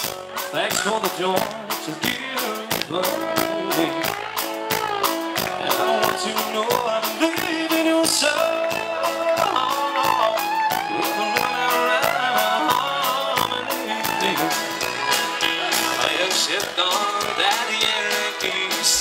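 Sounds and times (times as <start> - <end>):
bass guitar: 0.0 - 19.0
drum kit beat: 0.0 - 19.0
electric guitar: 0.0 - 19.0.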